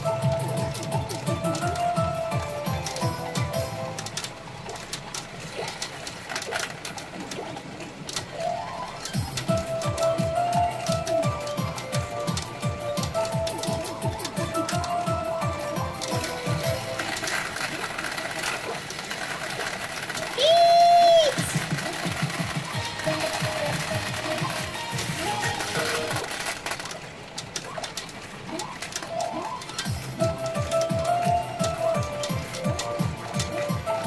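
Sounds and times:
pachinko electronic music: 0:00.0 - 0:34.0
rapid clatter of balls: 0:00.0 - 0:34.0.

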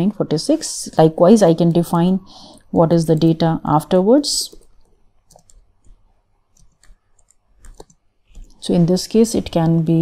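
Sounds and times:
keyboard keys typing: 0:04.4 - 0:08.6.

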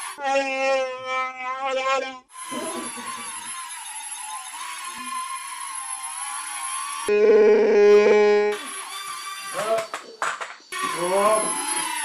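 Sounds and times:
toy quadcopter rotors whining: 0:01.8 - 0:07.1, 0:08.0 - 0:10.0, 0:10.6 - 0:12.0.

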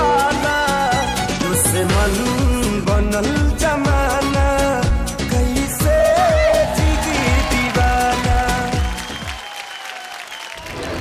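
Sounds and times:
applause: 0:06.8 - 0:11.0.

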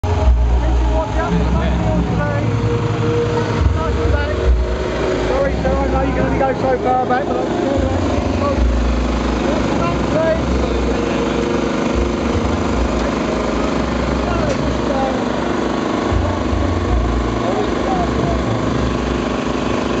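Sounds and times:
low rumble: 0:00.0 - 0:14.9
crowd chatter: 0:00.0 - 0:20.0
mechanical engine drone: 0:00.0 - 0:20.0.

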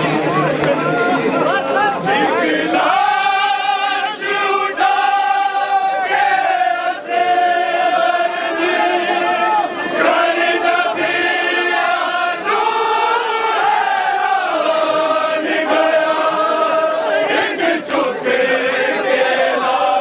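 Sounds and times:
men chanting a lament in unison: 0:01.3 - 0:20.0.

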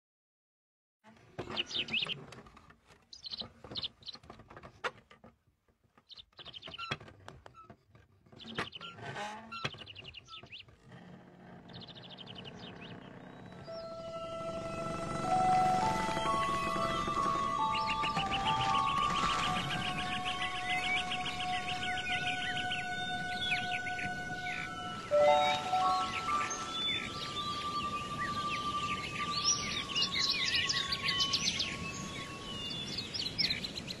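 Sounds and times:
birds chirping and twittering: 0:01.3 - 0:05.2, 0:05.9 - 0:34.0
small bird chirping: 0:06.0 - 0:07.0
soft music: 0:13.5 - 0:32.8.

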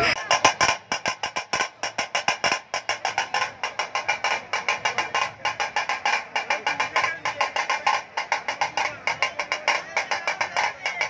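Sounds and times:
rapid drumming: 0:00.0 - 0:11.0.

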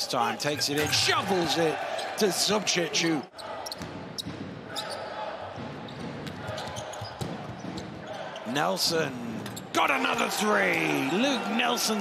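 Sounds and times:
sneaker squeaks: 0:03.4 - 0:05.2, 0:05.9 - 0:08.5.

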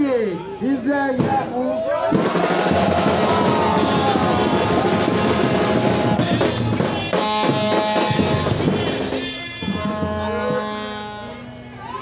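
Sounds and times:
crowd cheering: 0:00.0 - 0:12.0
loud fast drumming: 0:02.1 - 0:10.7
held musical notes: 0:03.4 - 0:11.8.

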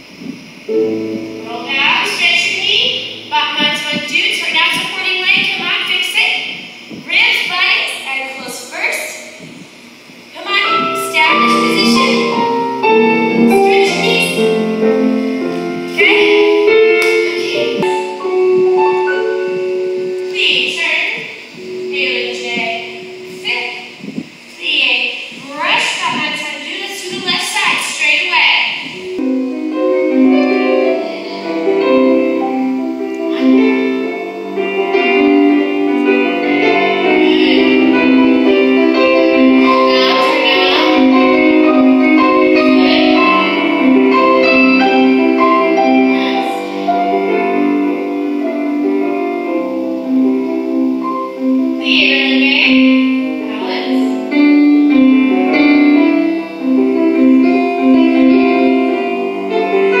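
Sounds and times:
slow instrumental music: 0:00.0 - 0:04.6, 0:09.4 - 0:24.6, 0:28.9 - 1:00.0.

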